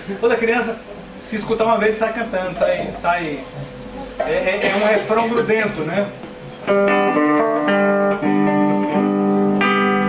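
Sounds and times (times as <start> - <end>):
acoustic guitar strummed: 6.4 - 10.0.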